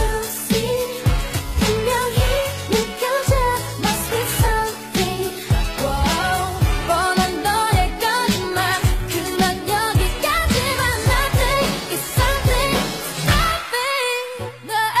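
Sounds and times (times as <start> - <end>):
person singing: 0.0 - 15.0
deep kick drum: 10.0 - 13.6.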